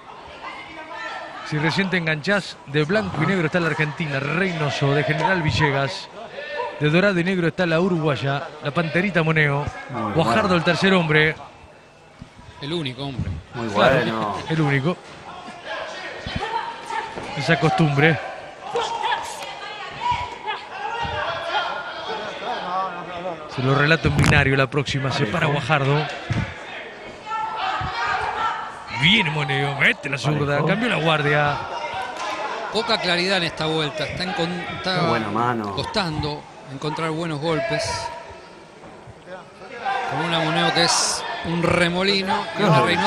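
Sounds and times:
low crowd murmur: 7.8s - 43.0s
voices calling out in hall: 9.7s - 11.1s, 13.4s - 17.4s, 26.0s - 32.7s, 33.9s - 36.8s, 42.2s - 43.0s
faint distant voice: 42.6s - 43.0s.

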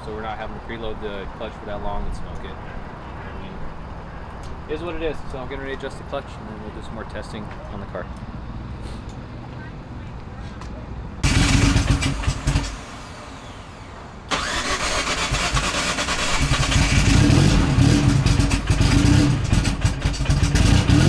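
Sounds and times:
car engine starting and running: 11.2s - 21.0s
loud engine burst: 11.2s - 21.0s.

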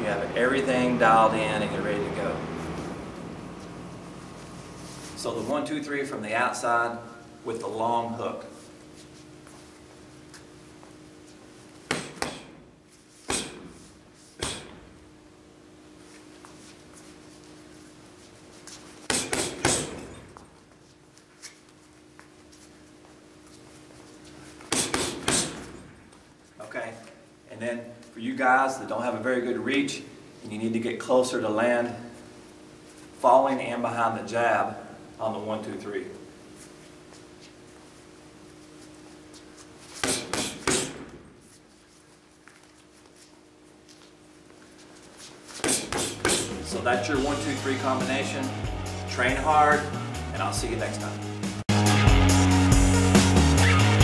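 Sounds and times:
steady low hum: 0.0s - 51.7s
gloves thudding on punching bag: 11.8s - 13.8s, 14.4s - 15.0s, 19.1s - 20.5s, 24.7s - 26.0s, 40.0s - 41.4s, 45.6s - 46.7s
sharp breaths forced out: 13.2s - 14.9s, 45.6s - 46.6s.

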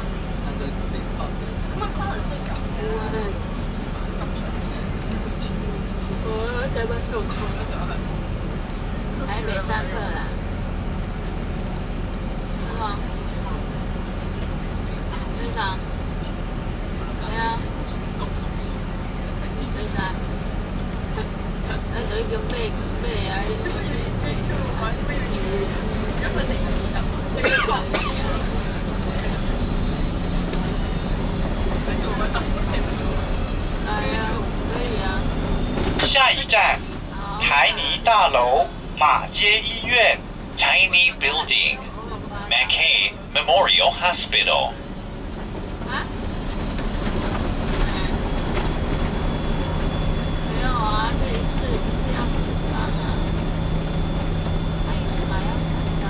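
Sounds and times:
bus engine drone: 0.0s - 56.0s
indistinct voices: 36.0s - 44.8s.

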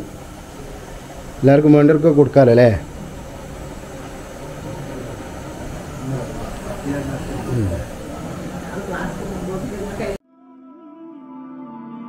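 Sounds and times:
steady rushing noise: 0.0s - 10.2s.

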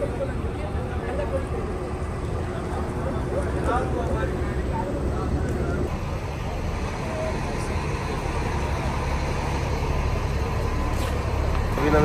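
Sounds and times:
diesel bus engines idling: 0.0s - 12.0s.

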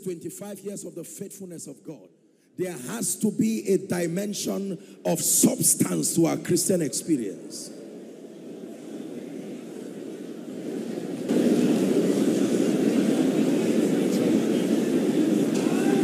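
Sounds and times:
congregation praying aloud: 10.9s - 16.0s.

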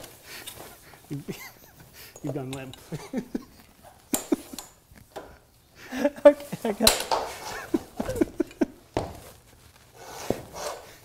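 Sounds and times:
reflector fabric rustling: 0.0s - 11.0s.

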